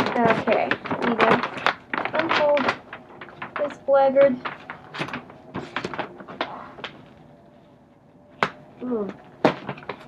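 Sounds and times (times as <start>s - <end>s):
paper snap: 0.0s - 7.1s
paper rustling and crinkling: 0.0s - 7.8s, 8.4s - 10.0s.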